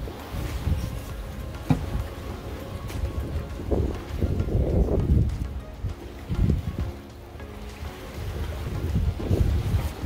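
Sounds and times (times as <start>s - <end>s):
soft background music: 0.0s - 10.0s
wind buffeting microphone: 0.0s - 10.0s.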